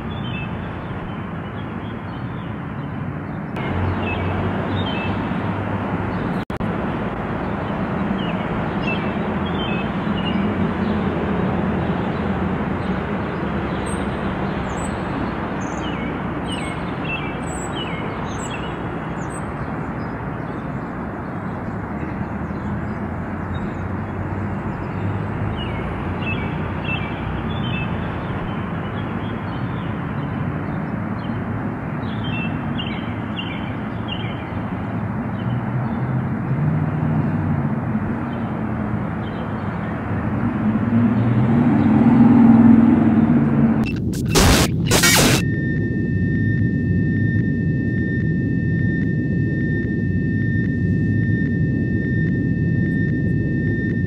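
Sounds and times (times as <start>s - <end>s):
small birds chirping: 0.0s - 5.3s, 7.4s - 11.1s, 11.8s - 31.4s
steady rushing background noise: 42.8s - 45.5s
low hum: 43.8s - 54.0s.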